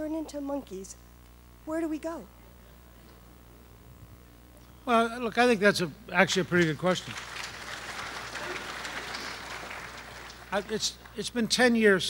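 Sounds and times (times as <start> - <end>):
audience applauding: 6.2 - 11.3.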